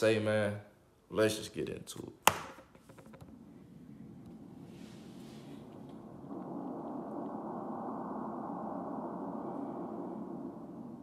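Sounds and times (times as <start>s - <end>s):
low hazy drone: 3.4s - 11.0s.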